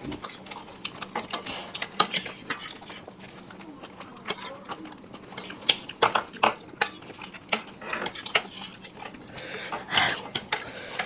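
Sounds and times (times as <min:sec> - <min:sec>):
chewing and smacking mouth sounds: 0:00.0 - 0:11.0
forks clicking on plates: 0:00.1 - 0:11.0.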